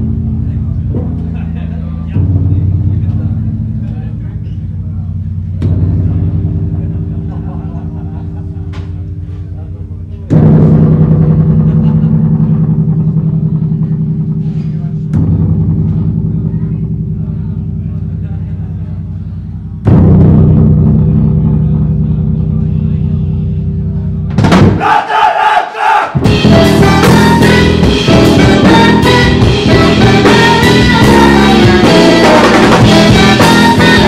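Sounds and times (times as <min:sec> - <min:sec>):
rock band loud low chord: 0:00.0 - 0:24.7, 0:26.2 - 0:34.0
drums: 0:00.0 - 0:34.0.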